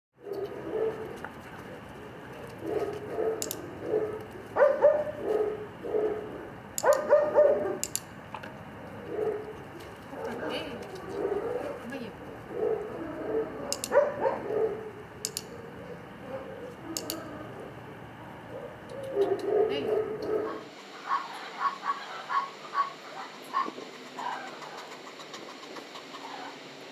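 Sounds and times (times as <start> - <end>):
dog-training clicker clicks: 3.4 - 4.3, 6.7 - 8.5, 13.7 - 14.2, 15.2 - 15.6, 16.8 - 17.3.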